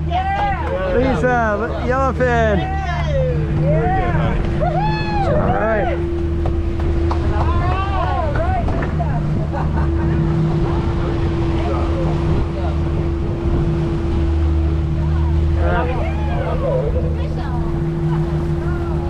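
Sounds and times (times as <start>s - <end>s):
boat engine humming: 0.0s - 19.0s
water noise: 0.0s - 19.0s
wind: 0.0s - 19.0s.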